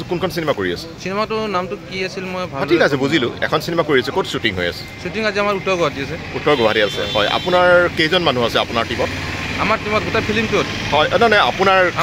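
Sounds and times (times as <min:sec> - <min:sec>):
low hum of traffic: 0:00.0 - 0:12.0
man speaking: 0:00.0 - 0:12.0.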